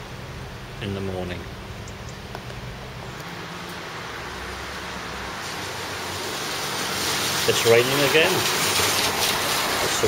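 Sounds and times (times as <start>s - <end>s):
car tyres hissing on wet road: 3.9s - 10.0s.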